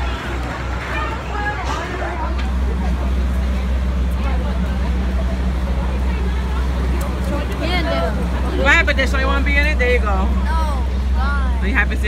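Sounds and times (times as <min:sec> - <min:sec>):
indistinct voices chattering: 0:00.0 - 0:12.0
steady low rumble: 0:00.0 - 0:12.0.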